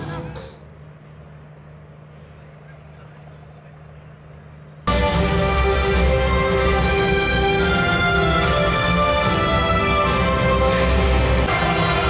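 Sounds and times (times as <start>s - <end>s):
steady low hum: 0.0s - 9.6s
faint distant voices: 1.3s - 4.8s.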